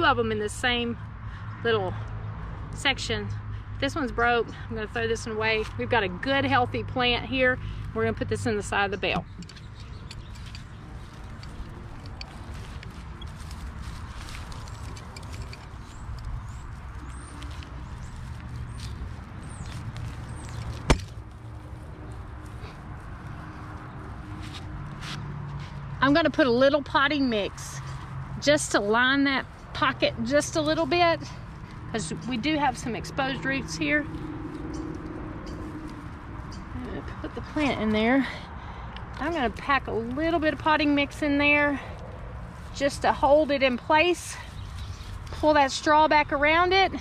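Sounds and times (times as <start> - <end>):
straw rustling and crackling: 8.6 - 25.8, 27.3 - 38.2, 39.1 - 46.0
straw crackling: 9.0 - 25.5.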